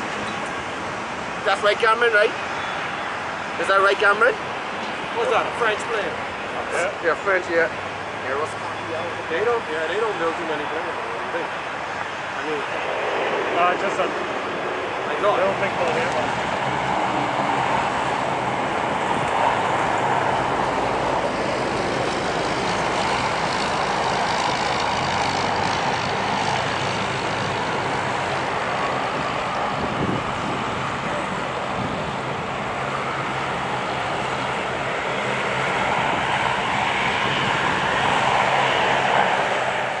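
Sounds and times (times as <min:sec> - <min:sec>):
jet aircraft rushing noise: 0:00.0 - 0:40.0.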